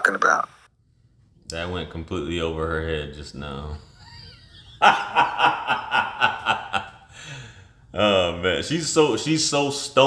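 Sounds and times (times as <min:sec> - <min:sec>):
man laughing hard: 0:03.9 - 0:07.1.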